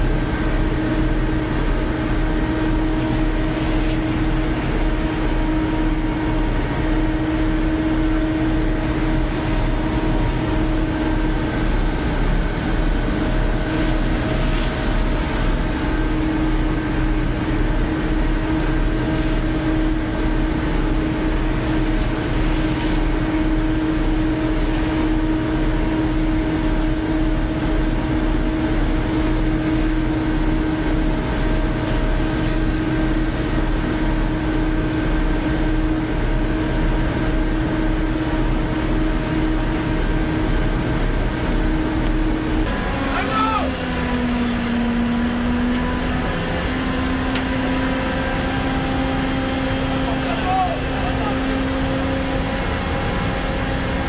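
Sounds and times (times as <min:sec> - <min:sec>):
boat diesel engine throbbing: 0:00.0 - 0:54.0.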